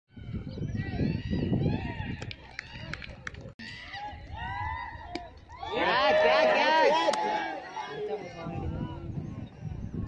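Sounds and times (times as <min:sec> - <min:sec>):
distant players shouting: 0:03.6 - 0:09.1.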